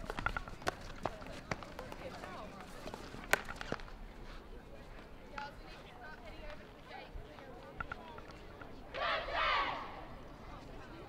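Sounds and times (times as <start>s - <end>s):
hockey sticks hitting balls: 0.0s - 3.9s
distant players calling: 8.9s - 10.2s.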